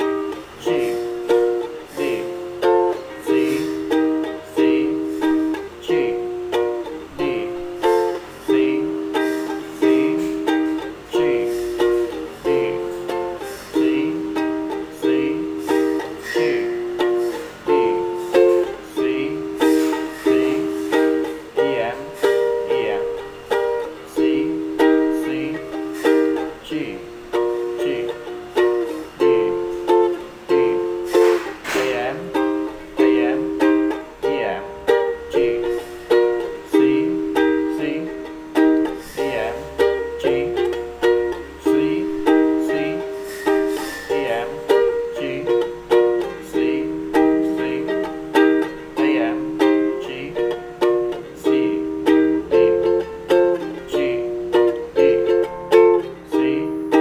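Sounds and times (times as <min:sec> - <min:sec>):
ukulele strumming chords: 0:00.0 - 0:57.0.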